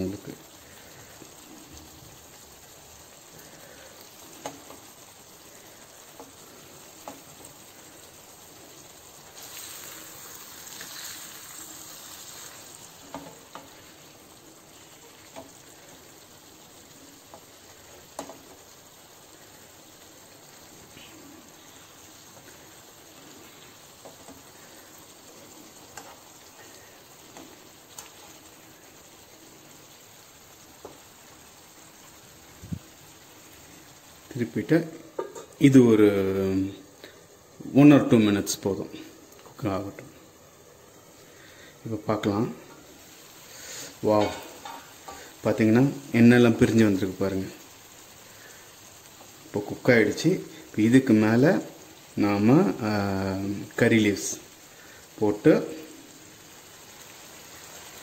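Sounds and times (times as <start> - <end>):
curry sizzling in a pan: 0.0 - 58.0
metal spoon scraping a pan: 25.9 - 28.4, 43.5 - 45.4.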